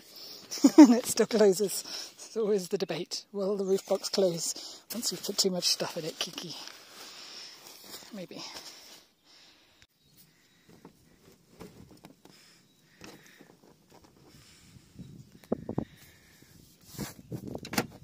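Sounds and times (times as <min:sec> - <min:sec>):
plastic rubbing and fumbling: 0:10.6 - 0:14.6.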